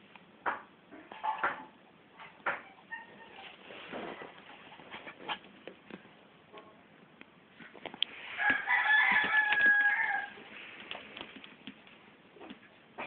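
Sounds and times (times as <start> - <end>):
puppy scuffling on bedding: 3.2 - 5.8
rooster crowing: 8.4 - 10.4.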